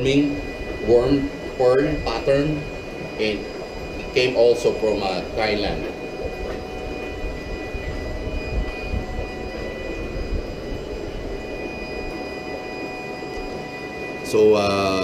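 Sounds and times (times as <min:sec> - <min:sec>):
high-pitched whines: 0:00.0 - 0:15.0
low machine rumble: 0:00.0 - 0:15.0.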